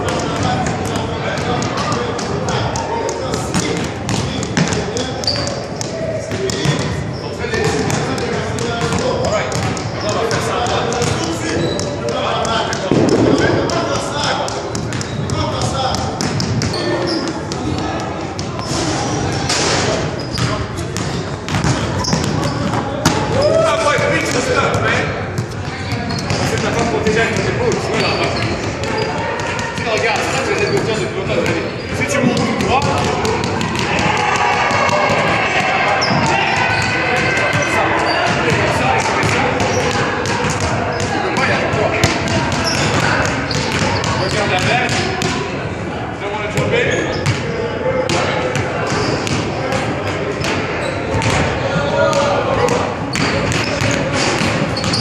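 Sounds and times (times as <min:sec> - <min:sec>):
basketballs bouncing on hardwood: 0:00.0 - 0:07.0, 0:07.6 - 0:18.7, 0:20.2 - 0:45.4
indistinct voices echoing: 0:00.0 - 0:55.0.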